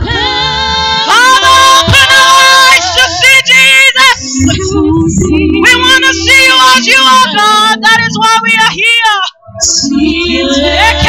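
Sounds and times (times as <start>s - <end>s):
women singing worship song: 0.0s - 8.8s, 9.5s - 11.0s.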